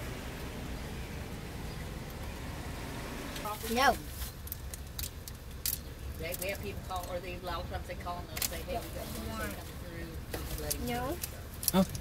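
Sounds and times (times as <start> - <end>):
car engine idling: 0.0 - 6.6.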